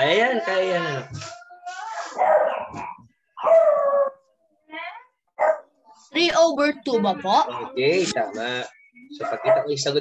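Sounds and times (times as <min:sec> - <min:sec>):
dog barking: 0:02.2 - 0:04.2, 0:05.4 - 0:05.7, 0:09.2 - 0:09.9.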